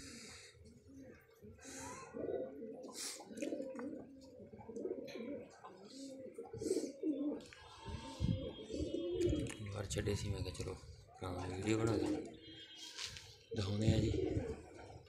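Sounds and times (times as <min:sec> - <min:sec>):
pigeons cooing: 0:00.0 - 0:09.8, 0:10.8 - 0:12.8, 0:13.5 - 0:15.0.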